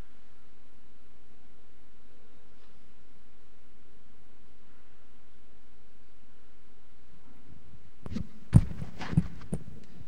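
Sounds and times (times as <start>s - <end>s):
rustling on microphone: 8.0s - 10.0s
dull thuds on microphone: 8.1s - 9.6s.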